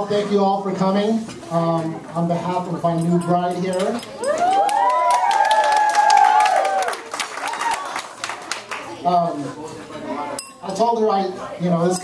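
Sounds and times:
crowd cheering and whooping: 4.2 - 8.1
people clapping: 4.3 - 9.0.

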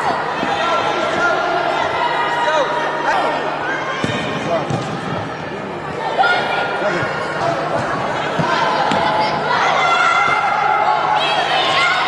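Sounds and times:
echoing chatter: 0.0 - 12.0
ball kicked and bouncing: 4.0 - 5.1.

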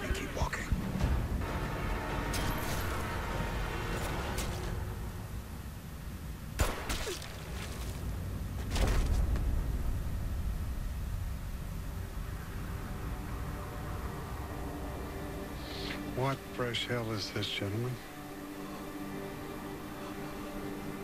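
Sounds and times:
low rumbling score: 0.0 - 6.8, 7.9 - 21.0
heavy low surge: 9.1 - 15.6.

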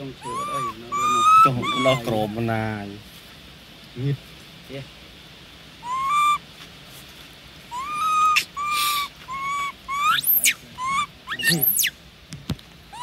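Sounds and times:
macaque coo calls: 0.0 - 2.5, 5.8 - 6.4, 7.6 - 12.0
macaque shrill squeals: 0.2 - 2.5, 5.8 - 6.4, 7.7 - 12.0.

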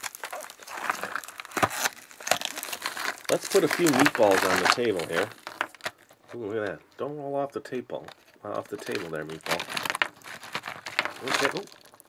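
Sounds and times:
plastic wrapper crinkling: 0.0 - 7.1, 8.0 - 12.0.

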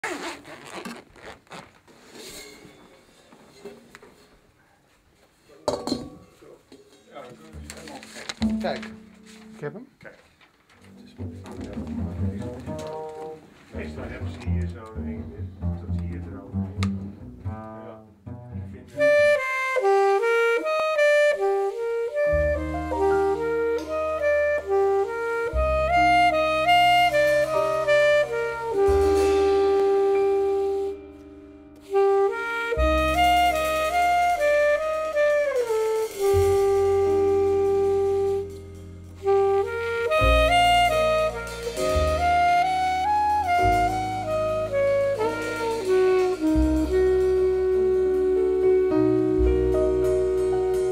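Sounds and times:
alto saxophone jazz melody: 7.6 - 9.7, 10.9 - 50.9
upright bass long low notes: 11.0 - 19.4, 22.3 - 50.9.

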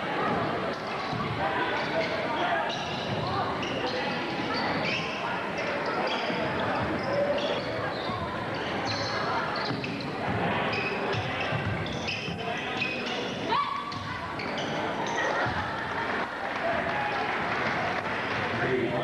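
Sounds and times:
sneaker squeaks: 0.3 - 15.7.

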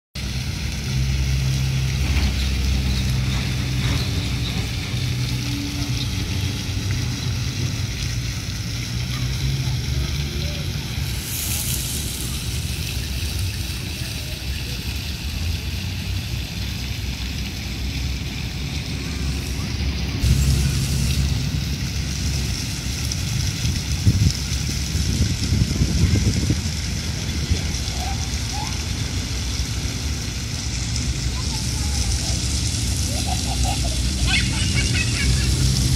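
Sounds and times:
fountain water splashing into pool: 0.2 - 35.9
faint voices: 8.4 - 21.4, 25.2 - 34.8
low rumble: 16.2 - 27.8.

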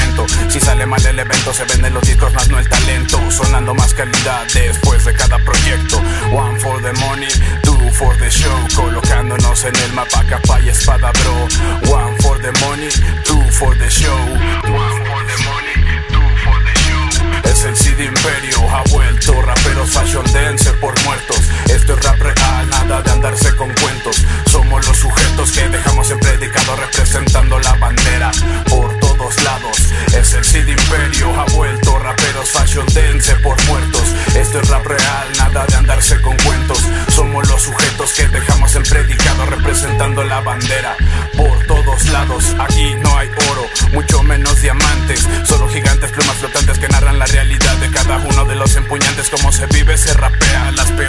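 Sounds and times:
heavy repeating bass: 0.0 - 51.0
rapping over a beat: 0.0 - 51.0.

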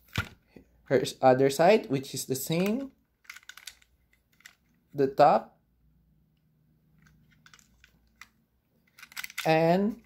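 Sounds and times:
plastic toy clicks: 2.6 - 4.6, 8.9 - 9.6.

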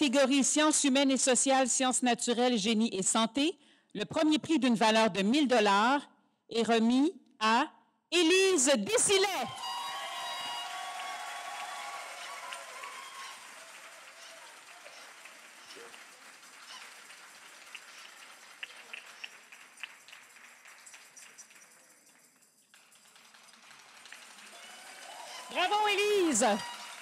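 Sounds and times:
audience applauding: 9.3 - 27.0.

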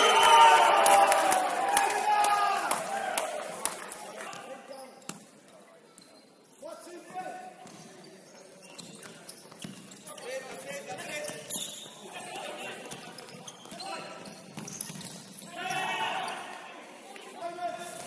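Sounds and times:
players shouting: 0.0 - 3.8, 15.5 - 16.6.

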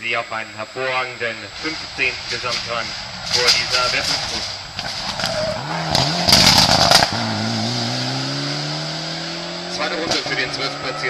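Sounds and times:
burst of rough noise: 1.2 - 11.0
rally car engine revving: 1.5 - 11.0.

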